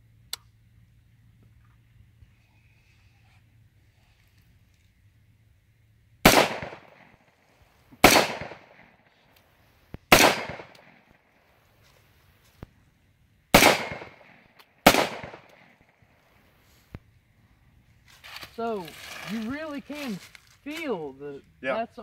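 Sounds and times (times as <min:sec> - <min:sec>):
rifle shots: 0:06.2 - 0:07.3, 0:08.0 - 0:09.0, 0:10.1 - 0:11.2, 0:13.5 - 0:16.1.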